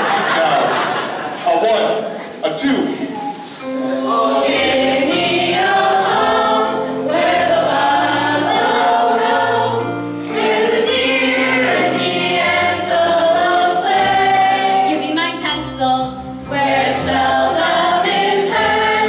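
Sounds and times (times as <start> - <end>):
choir singing slow song: 3.6 - 19.0.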